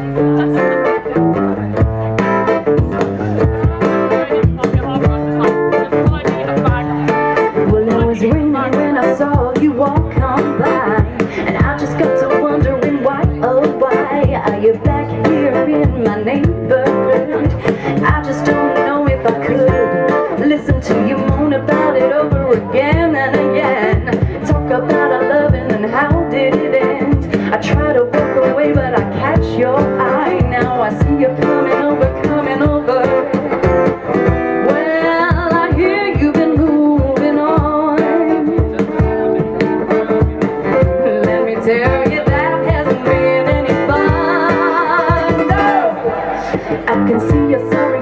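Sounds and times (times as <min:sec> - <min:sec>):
percussive beat: 0:00.0 - 0:48.0
strummed acoustic guitar: 0:00.0 - 0:48.0
woman singing: 0:07.6 - 0:38.6, 0:40.6 - 0:48.0.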